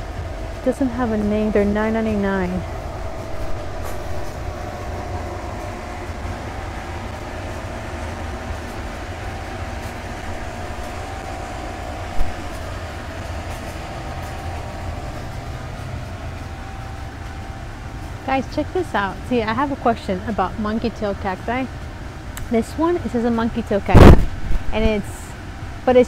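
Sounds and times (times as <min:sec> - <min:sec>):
faint even hum: 0:00.0 - 0:26.0
steady mechanical rumble: 0:00.0 - 0:26.0.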